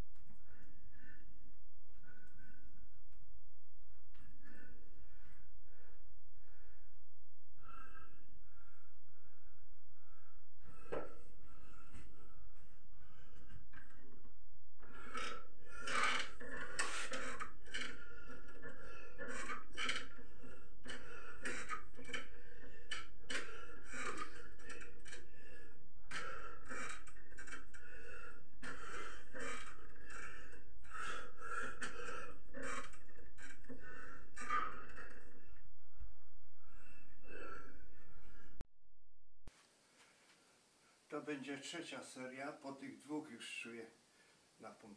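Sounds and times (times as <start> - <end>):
man breathing and gasping: 1.9 - 3.0, 7.6 - 14.2, 14.8 - 36.0, 36.6 - 38.6.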